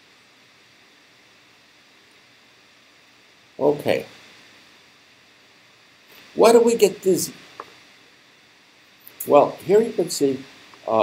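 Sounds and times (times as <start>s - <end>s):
faint steady recording hiss: 0.0s - 11.0s.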